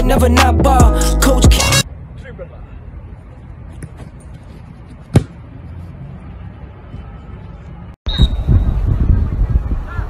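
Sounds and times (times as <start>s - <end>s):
football kicked with a thud: 5.1s - 5.4s.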